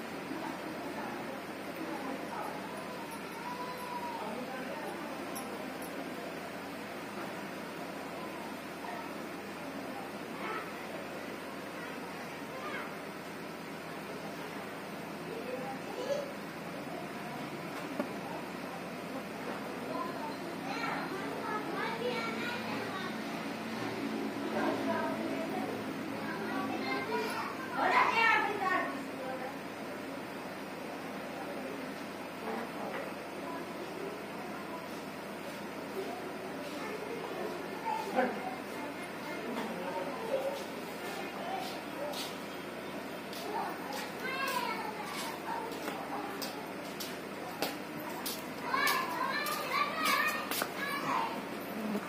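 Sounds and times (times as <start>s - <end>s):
child calling out: 2.9s - 4.4s.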